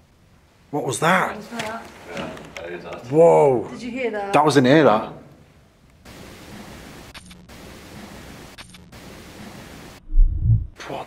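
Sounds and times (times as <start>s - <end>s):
steady hiss: 6.0s - 10.0s.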